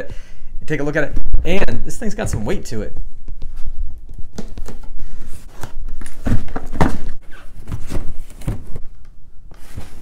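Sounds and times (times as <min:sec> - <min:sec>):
cardboard scuffing and rubbing: 0:04.4 - 0:08.9, 0:09.5 - 0:10.0.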